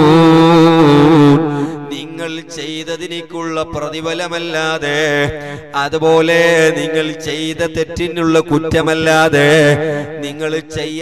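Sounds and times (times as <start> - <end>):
man chanting: 0.0 - 11.0.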